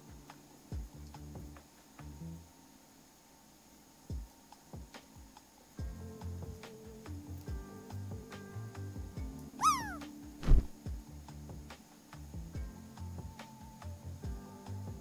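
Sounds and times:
soft background music: 0.0 - 15.0
cat meowing: 9.6 - 10.0
thump: 10.4 - 10.8.

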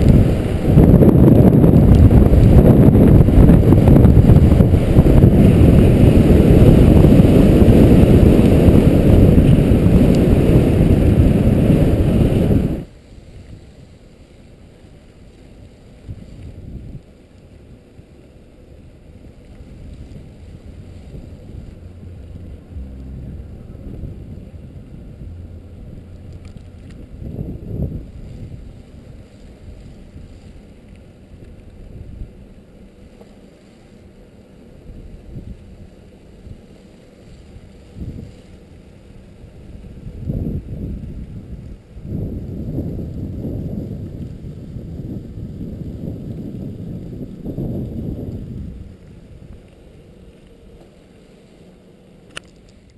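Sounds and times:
loud wind rushing over microphone: 0.0 - 13.7, 16.0 - 17.1, 18.8 - 32.5, 34.8 - 36.7, 37.3 - 50.3
faint low wind rumble: 0.0 - 52.9.

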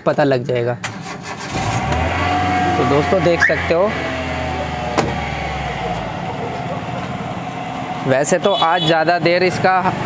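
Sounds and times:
car starter cranking: 0.8 - 6.2
car engine idling: 0.9 - 10.0.

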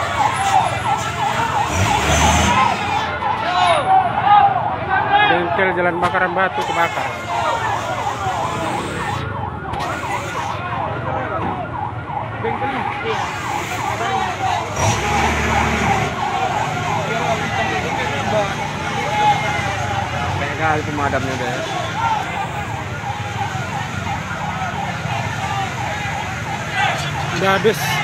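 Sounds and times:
fire truck siren wailing: 0.0 - 28.0
people's voices: 0.0 - 28.0.

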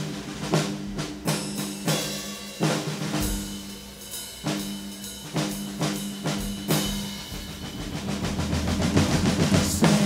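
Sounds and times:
fast drum strokes: 0.0 - 10.0.

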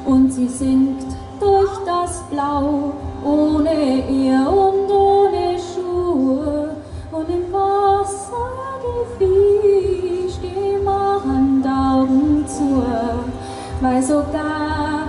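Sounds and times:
woman singing: 0.0 - 15.0.

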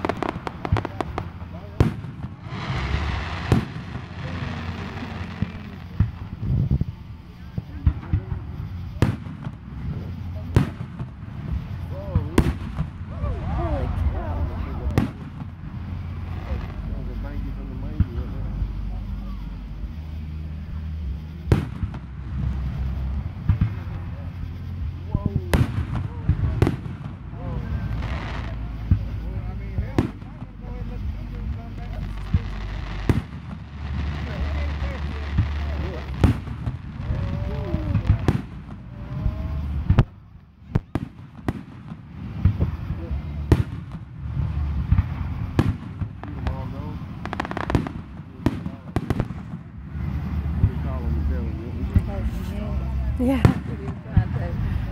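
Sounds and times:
fireworks bangs and cracks: 0.0 - 18.8, 21.2 - 54.9
low rumble: 0.0 - 54.9.

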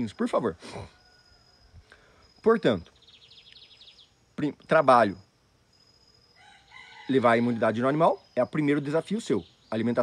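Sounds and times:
rooster crowing: 0.8 - 1.9, 6.3 - 8.0.

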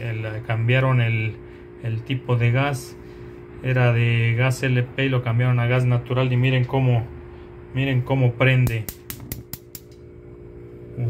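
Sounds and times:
gas stove igniter clicking: 8.6 - 10.0.

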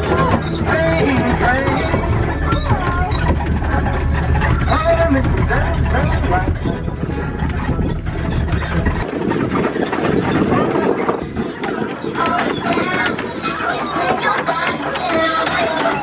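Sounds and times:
ride train rumbling: 0.0 - 16.0.

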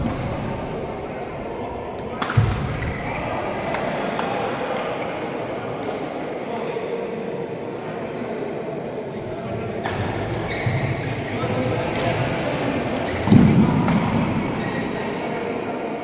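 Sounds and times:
racket hitting shuttlecock: 2.0 - 3.0, 13.0 - 14.4.

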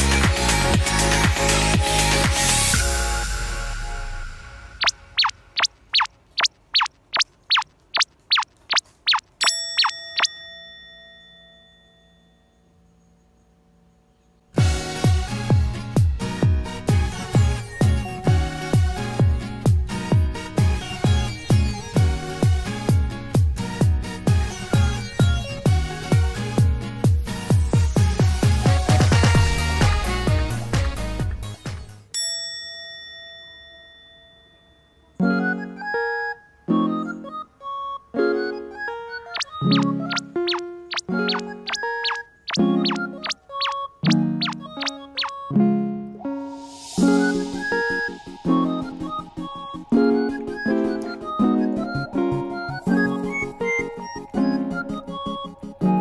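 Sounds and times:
falling-pitch cartoon blips: 4.7 - 10.3, 36.9 - 45.5
bell-like ding: 9.4 - 12.6, 32.2 - 35.2.

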